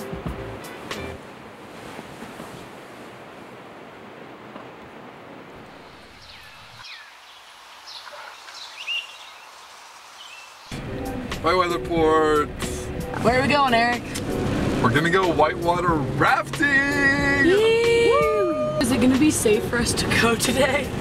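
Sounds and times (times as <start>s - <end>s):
rain hissing: 1.8s - 17.8s.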